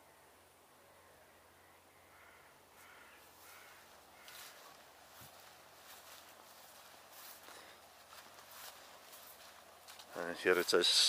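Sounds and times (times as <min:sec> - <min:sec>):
distant bird calls: 0:00.8 - 0:11.0
soft rustle: 0:02.8 - 0:11.0.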